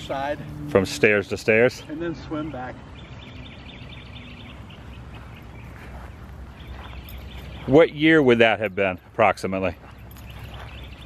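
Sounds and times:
birds chirping: 0:00.0 - 0:11.0
steady low hum: 0:00.0 - 0:11.0.

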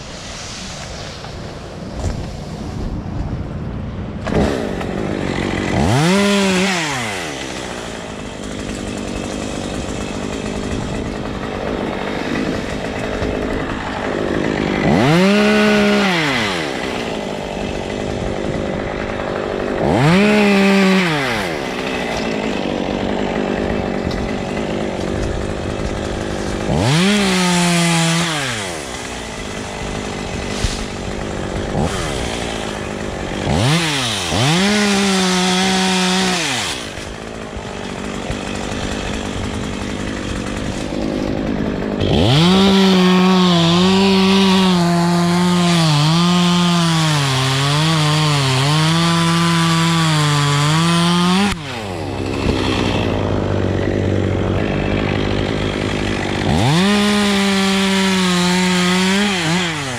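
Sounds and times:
chainsaw idling and revving: 0:04.1 - 0:59.9.

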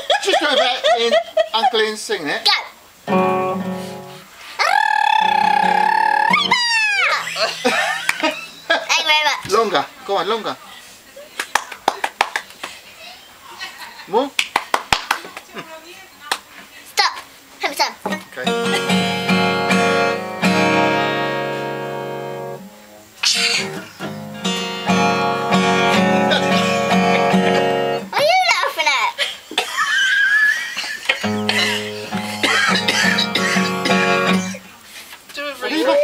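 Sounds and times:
acoustic guitar strumming chords: 0:03.0 - 0:04.3, 0:05.2 - 0:08.0, 0:18.1 - 0:28.2, 0:31.2 - 0:34.7.

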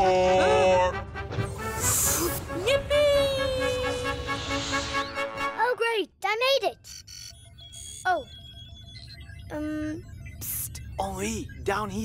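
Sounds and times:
electronic bleeps: 0:06.8 - 0:12.0
soft electronic pulsing: 0:06.8 - 0:12.0.

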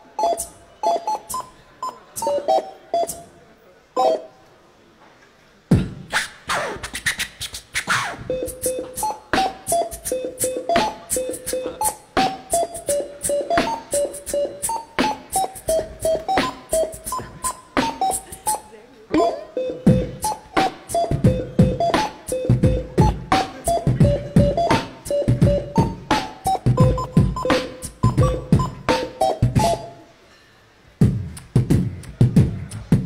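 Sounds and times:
barcode scanners beeping a tune: 0:00.0 - 0:03.3, 0:04.0 - 0:04.4, 0:08.3 - 0:30.0
beatbox-style percussive beat: 0:00.0 - 0:03.4, 0:05.7 - 0:30.0, 0:31.0 - 0:33.0.

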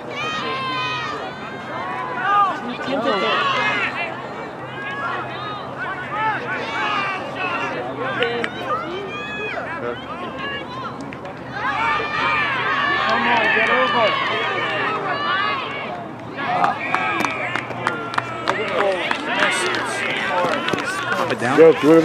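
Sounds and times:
players shouting: 0:00.0 - 0:22.0.

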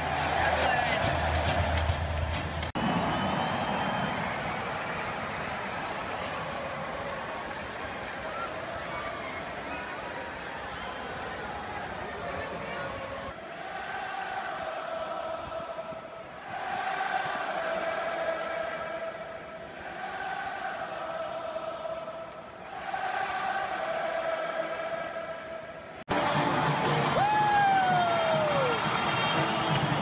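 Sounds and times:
stadium crowd chanting: 0:00.0 - 0:30.0.

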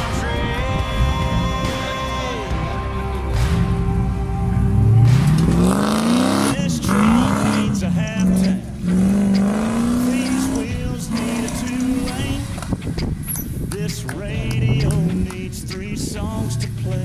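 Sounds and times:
engine revving hard: 0:03.2 - 0:13.4.

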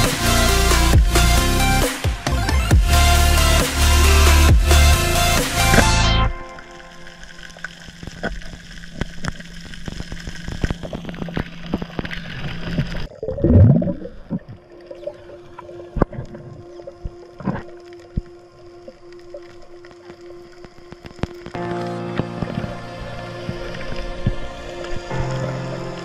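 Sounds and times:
low swooping gurgling: 0:02.5 - 0:26.0
sharp underwater clicks: 0:05.5 - 0:22.8.

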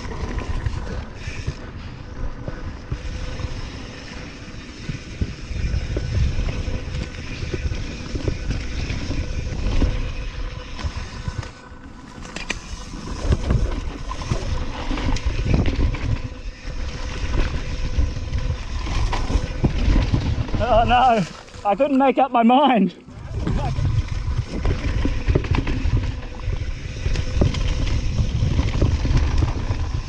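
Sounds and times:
rushing wind: 0:00.0 - 0:21.7, 0:23.0 - 0:30.0
bike tyre noise on dirt: 0:00.0 - 0:30.0.

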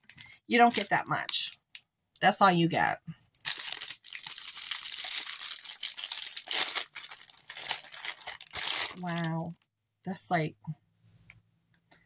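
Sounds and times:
plastic bag crinkling: 0:00.0 - 0:01.8, 0:03.3 - 0:09.6.

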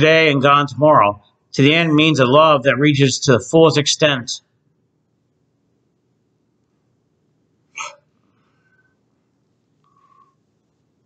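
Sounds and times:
man's sharp throat sound: 0:07.8 - 0:08.0.

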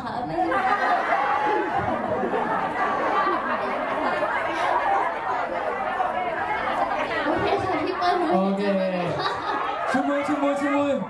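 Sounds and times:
crowd talking in a hall: 0:00.0 - 0:11.0.

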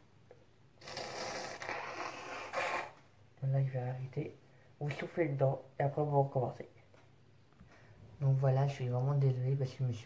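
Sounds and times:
person blowing nose: 0:00.8 - 0:03.0.

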